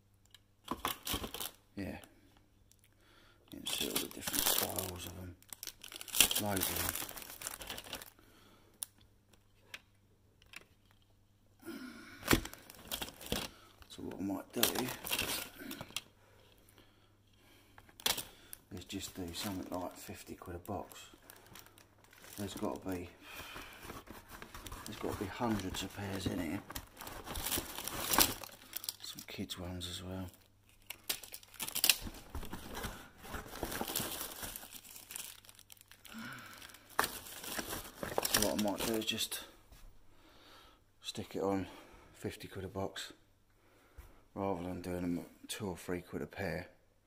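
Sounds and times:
plastic bags crinkling: 0:03.6 - 0:08.2, 0:12.2 - 0:16.0, 0:18.0 - 0:39.3.

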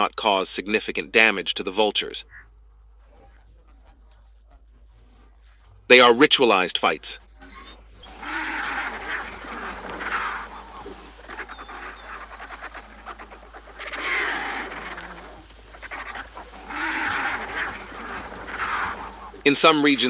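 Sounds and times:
vultures harsh raspy calls: 0:00.0 - 0:20.0.

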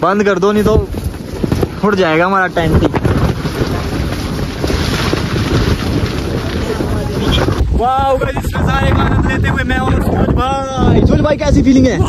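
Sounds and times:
wind gusting against tent: 0:00.0 - 0:12.0.

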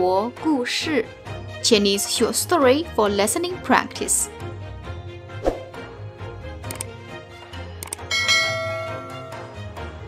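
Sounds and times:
soft background music: 0:00.0 - 0:10.0
bell-like chime: 0:08.1 - 0:09.8.

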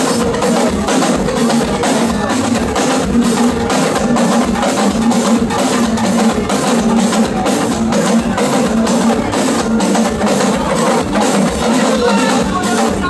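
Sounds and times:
drum ensemble playing: 0:00.0 - 0:13.0.

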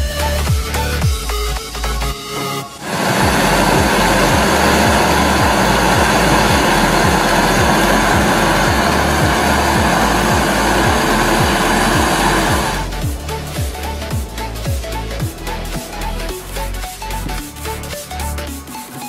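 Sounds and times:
music with kick drum: 0:00.0 - 0:02.2, 0:03.2 - 0:19.0
gas torch flame hissing: 0:02.8 - 0:13.0.

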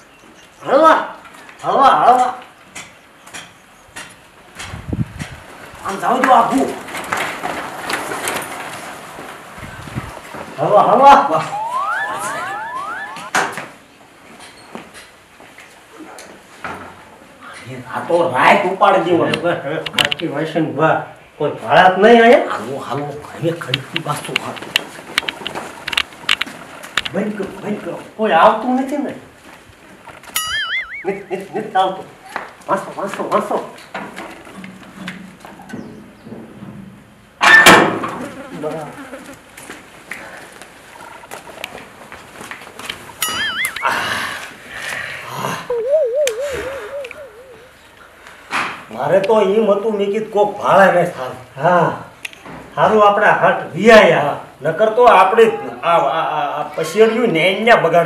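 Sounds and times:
warbling electronic tone: 0:11.3 - 0:13.4, 0:30.4 - 0:31.3, 0:43.2 - 0:44.2, 0:45.7 - 0:47.8.

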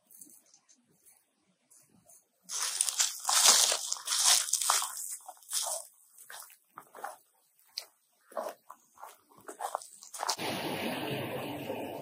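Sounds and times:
footsteps crunching through dry leaves: 0:02.5 - 0:07.2, 0:08.3 - 0:10.4.

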